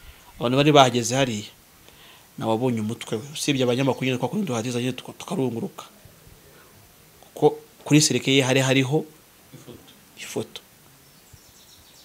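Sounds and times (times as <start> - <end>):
faint background noise: 0.0 - 12.0
man's breath or mouth sound: 1.8 - 2.3.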